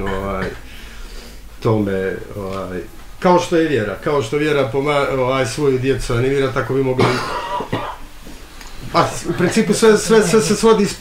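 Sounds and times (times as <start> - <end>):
person coughing: 7.0 - 8.1.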